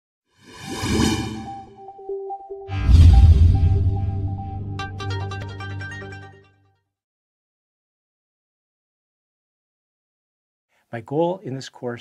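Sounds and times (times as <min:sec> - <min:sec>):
whoosh: 0:00.4 - 0:01.8, 0:02.7 - 0:04.2
electronic jingle: 0:00.6 - 0:06.3.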